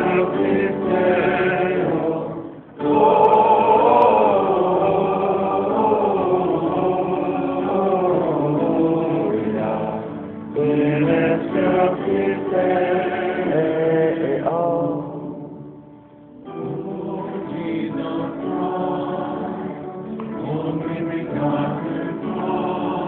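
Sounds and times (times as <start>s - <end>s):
voices singing a chant: 0.0s - 15.7s, 16.5s - 23.0s.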